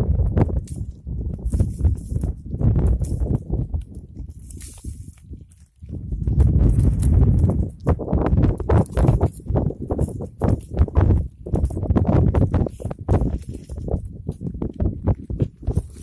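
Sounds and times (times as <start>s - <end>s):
goats chewing scrub: 0.0s - 16.0s.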